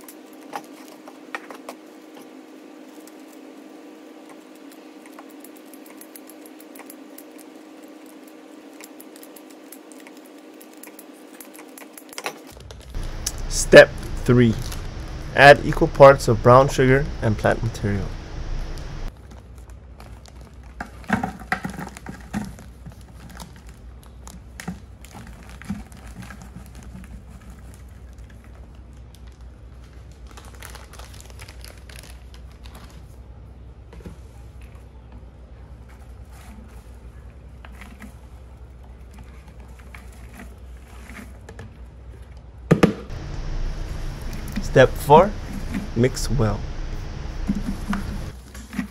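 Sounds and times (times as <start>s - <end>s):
low room hum: 0.0s - 21.1s, 22.5s - 48.9s
plastic bag crinkling: 19.1s - 21.1s, 21.8s - 33.2s
light taps and patters: 47.3s - 48.4s.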